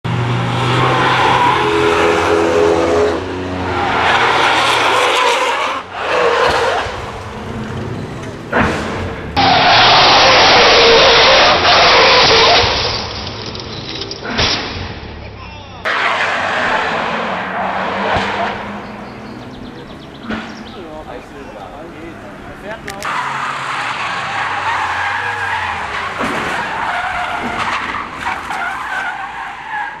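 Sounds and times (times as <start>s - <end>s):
tyres screeching: 0.6s - 30.0s.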